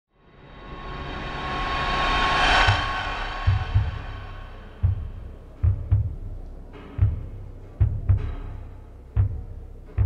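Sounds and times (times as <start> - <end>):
noisy drone: 0.2 - 6.3
deep heartbeat-like thuds: 2.4 - 10.0.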